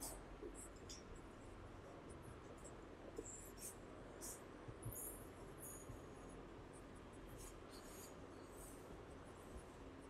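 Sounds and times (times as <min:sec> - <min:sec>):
marker writing on whiteboard: 0:02.1 - 0:06.1, 0:06.8 - 0:10.0.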